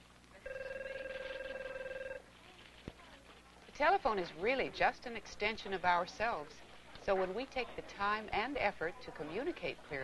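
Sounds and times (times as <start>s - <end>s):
desk telephone ringing: 0.4s - 2.2s.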